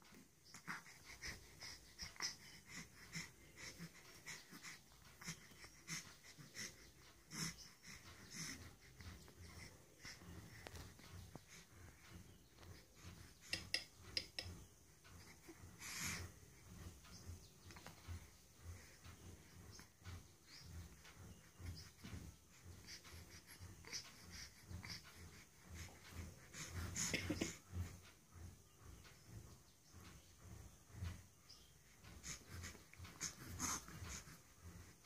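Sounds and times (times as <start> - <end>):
infant breathing wheezily: 0.5 - 13.6, 32.1 - 35.0.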